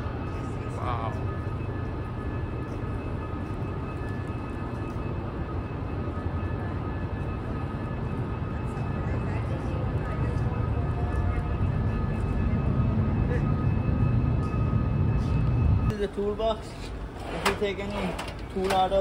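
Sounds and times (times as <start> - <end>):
faint machine hums: 0.0 - 19.0
low rumble of repair hall: 0.0 - 19.0.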